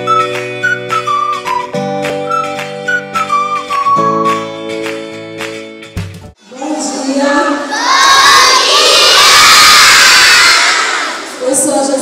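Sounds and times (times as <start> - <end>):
children shouting and cheering: 6.8 - 11.4.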